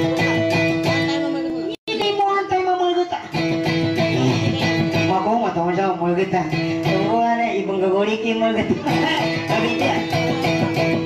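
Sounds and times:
electric guitar playing: 0.0s - 11.0s.

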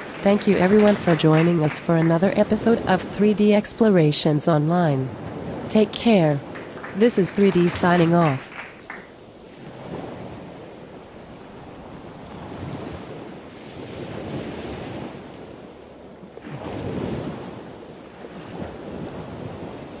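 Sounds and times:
waves washing in: 0.0s - 20.0s.

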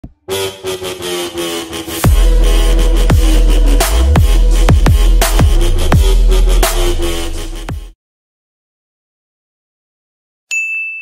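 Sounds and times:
buzzing electronic drone: 0.3s - 7.9s
heavy bass drop: 0.3s - 8.0s.

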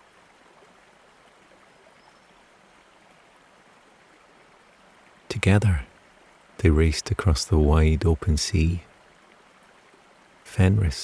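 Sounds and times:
faint running water: 0.0s - 11.0s.

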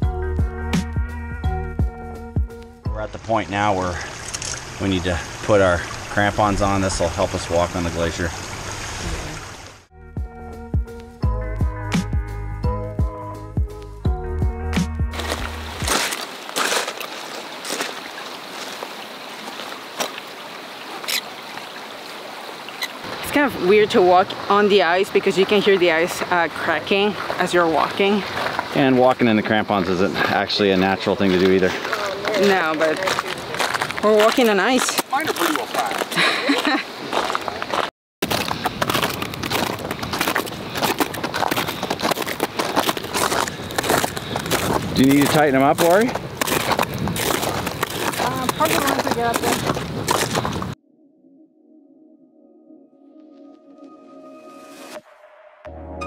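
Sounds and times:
background music: 0.0s - 3.7s, 9.9s - 15.9s, 50.8s - 56.0s
crampon footsteps crunching on ice: 15.1s - 18.0s, 31.2s - 50.8s.

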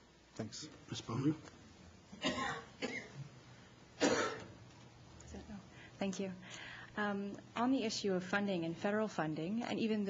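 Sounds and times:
person coughing: 2.2s - 3.2s, 4.0s - 4.5s.

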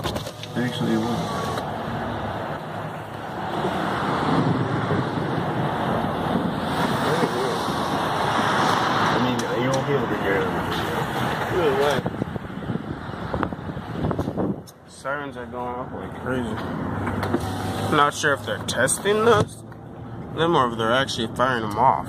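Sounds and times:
traffic noise: 0.0s - 22.0s
wind rushing: 3.4s - 9.3s, 10.1s - 14.7s.

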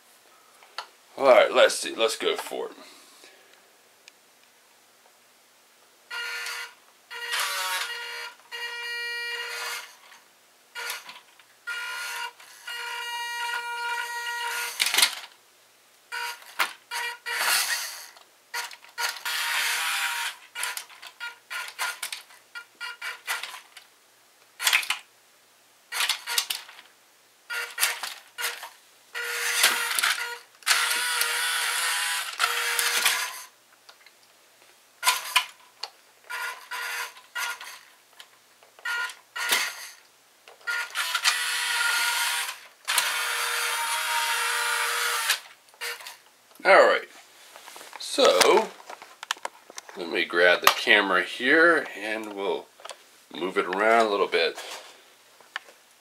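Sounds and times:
toy truck electric motor whining: 6.1s - 10.2s, 10.8s - 15.2s, 16.1s - 23.6s, 25.9s - 26.7s, 27.5s - 33.5s, 35.0s - 35.6s, 36.3s - 37.9s, 38.8s - 40.0s, 40.6s - 46.2s.

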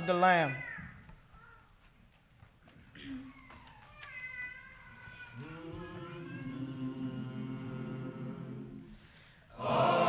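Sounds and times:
choir humming starting pitches: 5.4s - 10.0s.

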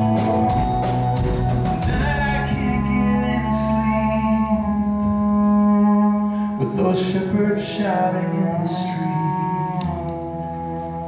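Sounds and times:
acoustic guitar: 0.0s - 11.0s
man singing a long note: 1.8s - 10.4s.

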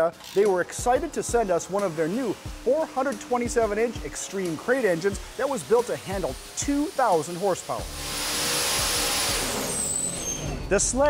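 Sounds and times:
turbo and exhaust rushing hiss: 0.5s - 10.7s.

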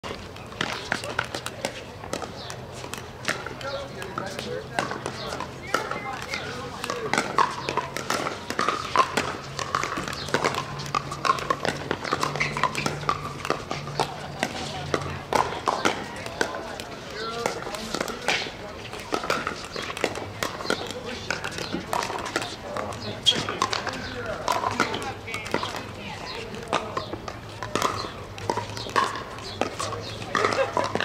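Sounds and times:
paddles hitting plastic ball: 0.0s - 31.0s
chatter of voices: 0.1s - 31.0s.

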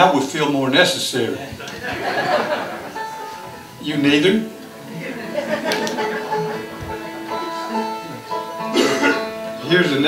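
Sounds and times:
plucked acoustic string notes: 1.6s - 10.0s.

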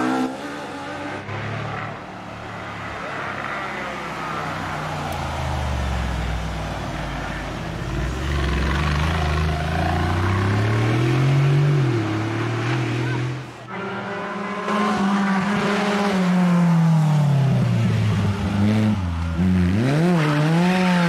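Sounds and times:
off-road vehicle engine pulling hard: 5.4s - 21.0s.

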